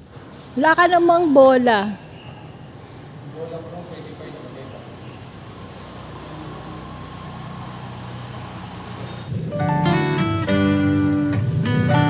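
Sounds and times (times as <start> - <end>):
vehicle engine running: 4.2 - 12.0.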